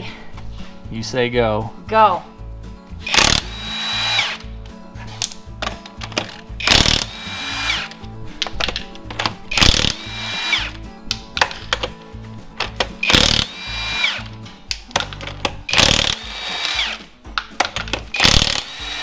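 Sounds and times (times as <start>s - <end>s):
impact wrench hammering: 3.0s - 4.5s, 5.2s - 12.0s, 12.6s - 19.0s.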